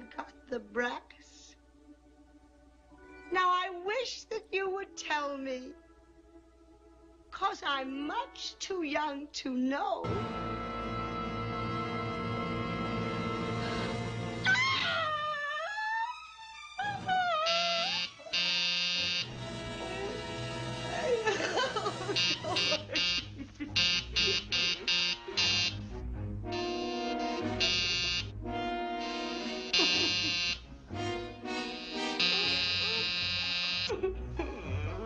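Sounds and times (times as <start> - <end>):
harsh electronic buzzing tone: 17.5 - 19.4, 22.2 - 25.8, 26.5 - 28.3, 29.0 - 30.7, 31.5 - 33.9.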